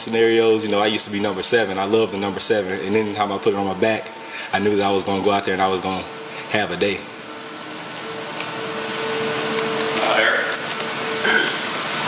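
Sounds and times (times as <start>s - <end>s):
low steady hum: 0.0s - 12.0s
steady hiss: 0.0s - 12.0s.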